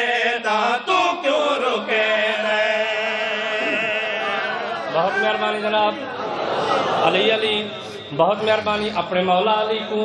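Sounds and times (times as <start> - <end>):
men chanting through pa: 0.0 - 6.0.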